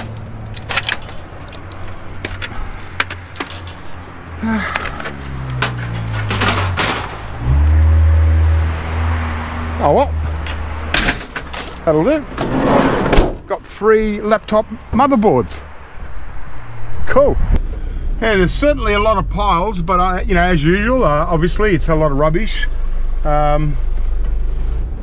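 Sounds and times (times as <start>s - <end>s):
computer parts clicking and clattering: 0.0s - 4.0s, 4.7s - 7.4s, 10.4s - 11.9s
vehicle engine rumbling: 0.0s - 25.0s.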